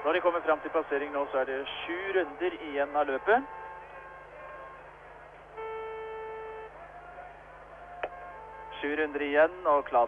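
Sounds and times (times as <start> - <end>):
faint steady hum: 0.0 - 10.0
steady pitched tone: 3.6 - 6.8.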